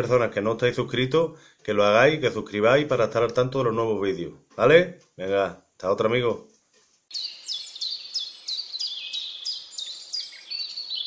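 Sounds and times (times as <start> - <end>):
songbird chirping: 7.1 - 11.0.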